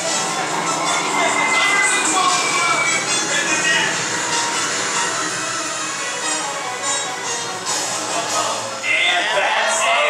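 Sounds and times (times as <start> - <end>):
film score with voices: 0.0 - 10.0.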